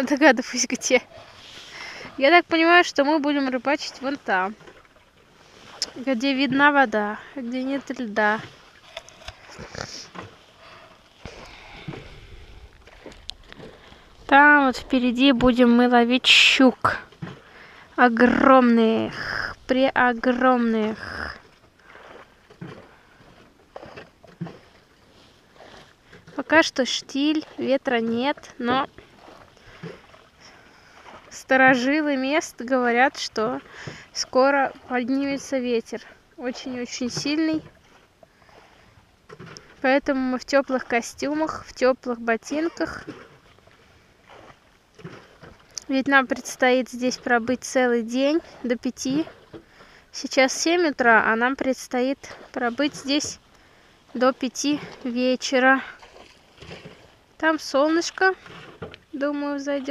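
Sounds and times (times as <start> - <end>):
boat handling noises: 0.0 - 59.9
water lapping: 0.0 - 59.9
person speaking: 14.3 - 17.0, 18.0 - 21.4.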